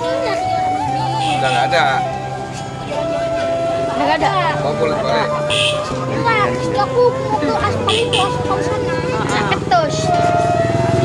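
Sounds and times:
voices talking: 0.0s - 10.4s.

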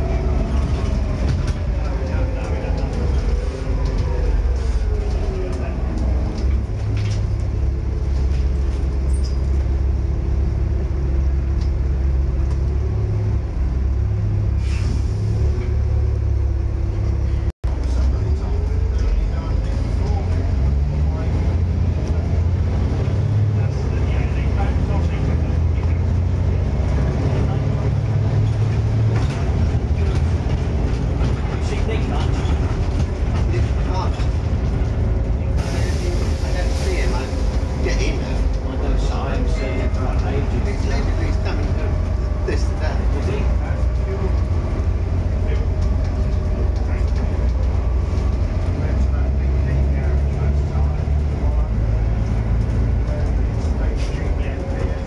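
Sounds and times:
bus diesel engine running: 0.0s - 55.0s.

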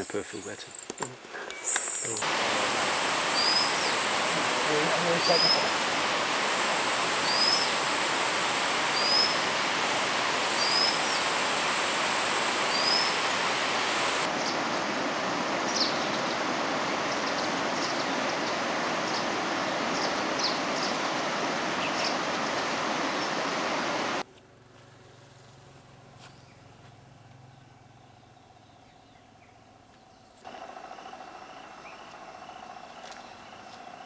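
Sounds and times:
flowing water rushing: 2.2s - 24.2s
bird whistled call: 3.4s - 4.0s, 7.2s - 7.7s, 8.9s - 9.4s, 10.6s - 11.2s, 12.7s - 13.2s.

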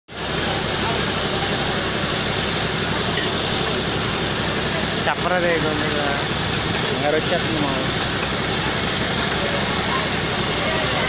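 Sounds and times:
loud machine noise: 0.1s - 11.0s.

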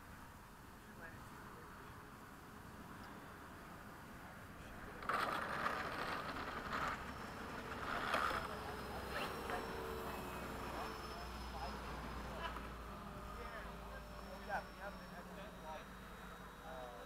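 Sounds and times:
electric ducted fan whine: 0.0s - 17.0s.

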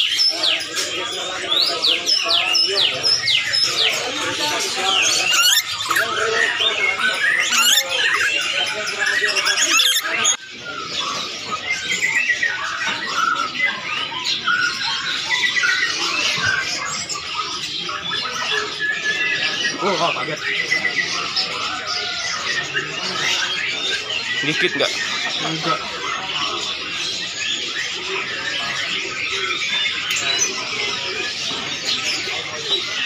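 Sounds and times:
parrots squawking and chirping: 0.0s - 33.0s.

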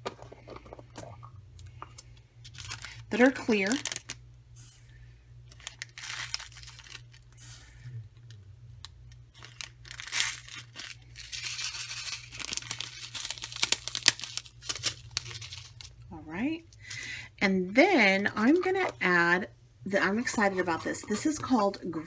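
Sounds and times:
plastic crinkling: 0.2s - 4.2s, 5.5s - 7.6s, 8.2s - 16.1s.

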